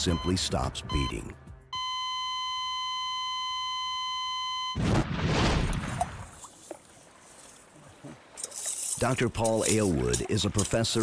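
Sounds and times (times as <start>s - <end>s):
heart monitor flatline tone: 0.0s - 1.2s, 1.8s - 4.8s.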